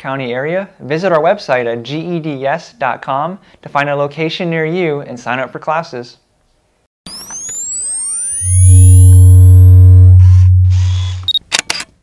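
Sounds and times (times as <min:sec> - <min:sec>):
loud deep steady hum: 0:08.4 - 0:11.3
camera shutter clicks: 0:11.2 - 0:12.0.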